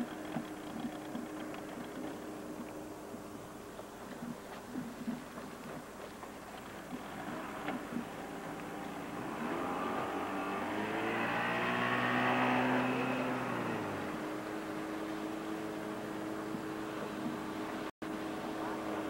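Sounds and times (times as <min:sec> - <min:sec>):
motorboat engine running: 0:00.0 - 0:19.0.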